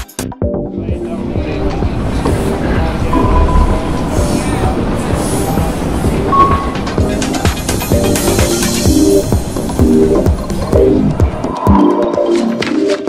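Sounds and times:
music: 0:00.0 - 0:13.0
subway train rumble: 0:00.6 - 0:12.2.

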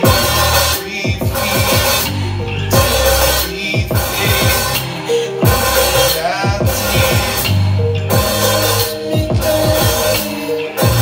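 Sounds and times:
drum kit played with mallets: 0:00.0 - 0:11.0
electronic backing track: 0:00.0 - 0:11.0.

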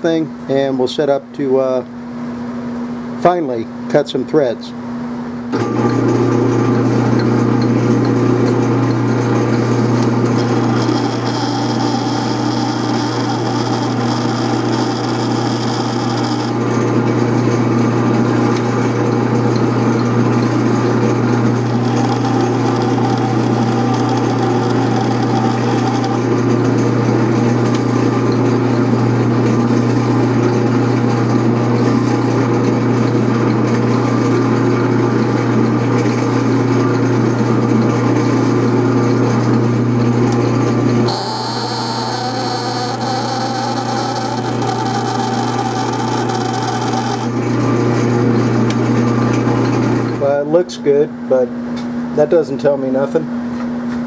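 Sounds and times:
metal lathe running: 0:07.0 - 0:32.4, 0:41.0 - 0:48.6
high-pitched metal cutting: 0:10.1 - 0:16.9, 0:20.8 - 0:26.5, 0:41.1 - 0:47.4.

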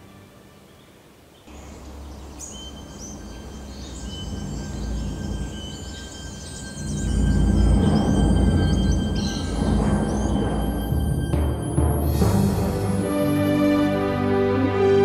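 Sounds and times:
birds chirping: 0:00.0 - 0:14.6
low rumble: 0:01.5 - 0:13.4.

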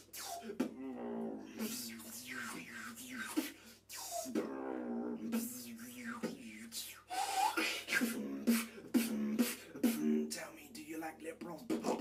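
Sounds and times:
beatboxing: 0:00.0 - 0:12.0.

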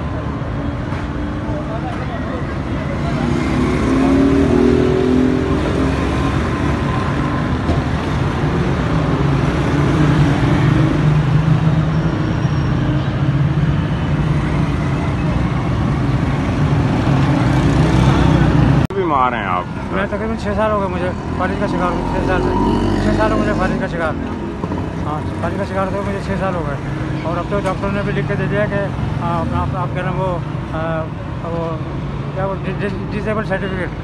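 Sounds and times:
vehicle engines passing: 0:00.0 - 0:34.0.

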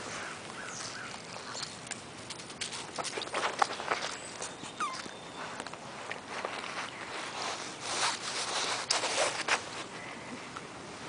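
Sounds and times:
scuffling in dry leaves: 0:00.0 - 0:10.4
puppies high-pitched calls: 0:04.0 - 0:05.7.

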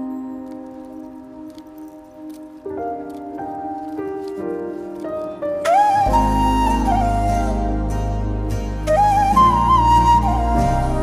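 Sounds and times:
soft background music chords: 0:00.0 - 0:11.0.

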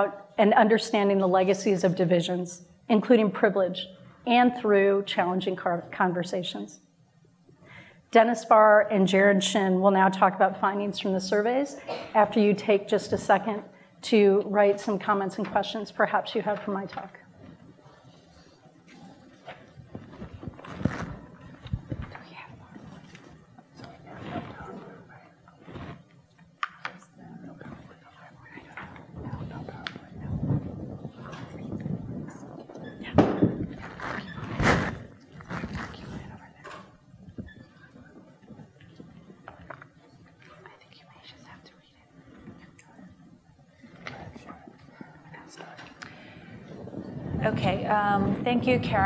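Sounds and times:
paper rustling and folding: 0:19.5 - 0:22.2, 0:33.7 - 0:36.3
people whispering: 0:21.4 - 0:26.0, 0:26.8 - 0:33.2, 0:35.4 - 0:46.9
low thumps on microphone: 0:28.8 - 0:36.4.

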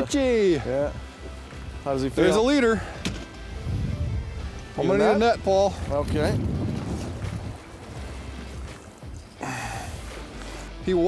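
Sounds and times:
choppy water around boat: 0:00.0 - 0:11.0
wind: 0:00.0 - 0:11.0.

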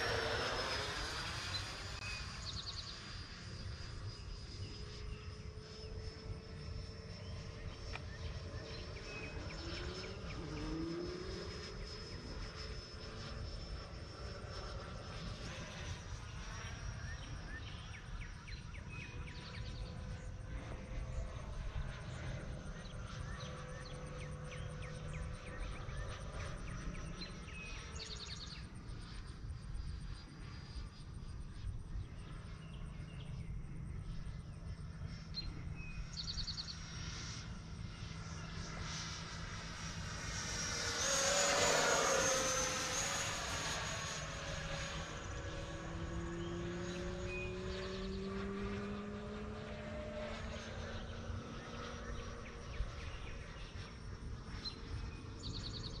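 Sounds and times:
model jet fan whining: 0:00.0 - 0:56.0.

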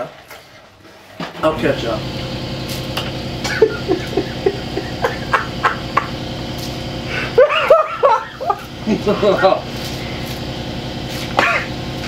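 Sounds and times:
steady low hum: 0:01.4 - 0:12.0
man laughing: 0:03.4 - 0:06.3, 0:07.0 - 0:09.7, 0:11.4 - 0:11.8.

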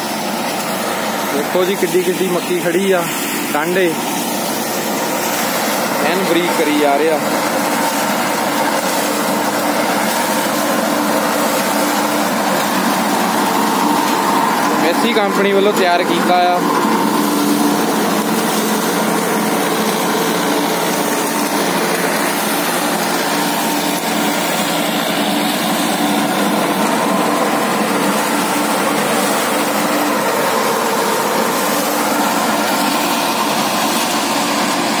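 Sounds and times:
rotary tiller churning soil: 0:00.0 - 0:35.0
tractor running under load: 0:00.0 - 0:35.0.

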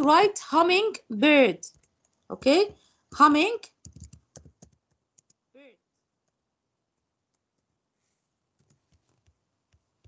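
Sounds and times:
computer keyboard keystrokes: 0:03.7 - 0:05.4.

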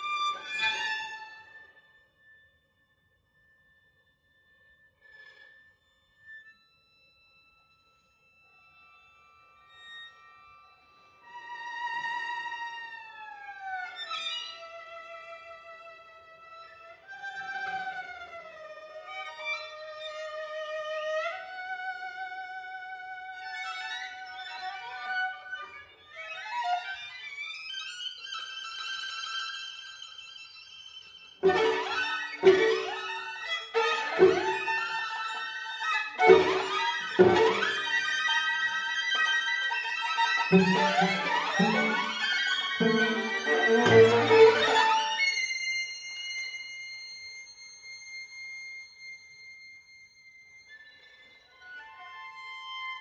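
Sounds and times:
violins playing high held notes: 0:31.4 - 0:35.0, 0:36.2 - 0:38.2, 0:40.4 - 0:45.4
violin upward glissandi: 0:31.4 - 0:35.4, 0:36.2 - 0:38.6, 0:40.2 - 0:45.5.

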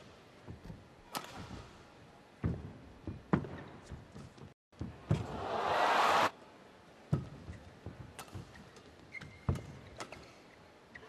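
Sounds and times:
arena crowd noise: 0:05.1 - 0:06.3.

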